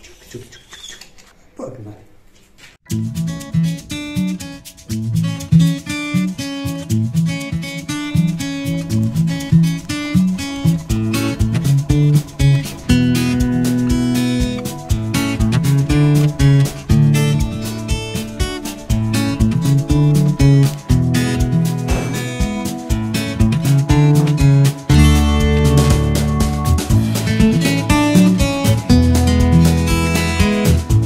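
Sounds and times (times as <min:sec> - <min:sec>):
strummed acoustic guitar music: 0:02.9 - 0:31.0.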